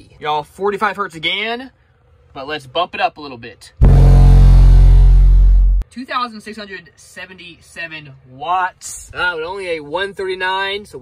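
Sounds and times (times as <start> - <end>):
deep subwoofer test tone: 3.8 - 5.8.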